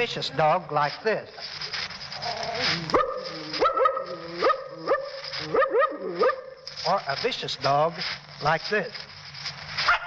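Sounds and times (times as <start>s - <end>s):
man imitating dog barks: 2.9s - 6.6s.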